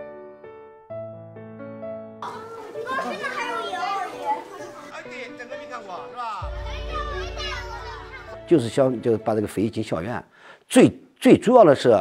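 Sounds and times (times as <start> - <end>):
schoolchildren chattering: 2.2 - 5.1, 5.8 - 8.8.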